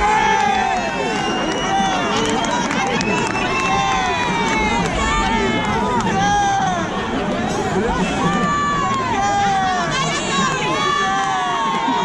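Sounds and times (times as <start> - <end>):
audience calling out and cheering: 0.0 - 12.0.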